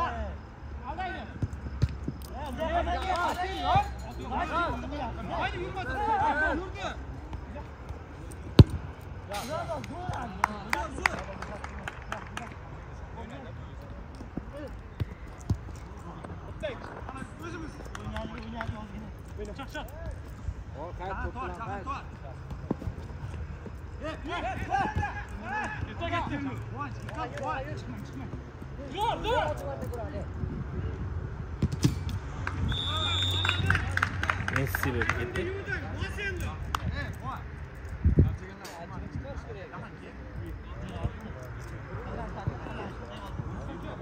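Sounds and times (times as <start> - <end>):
football kicks and bounces: 1.4 - 2.2, 7.3 - 9.0, 14.2 - 17.0, 31.5 - 32.2.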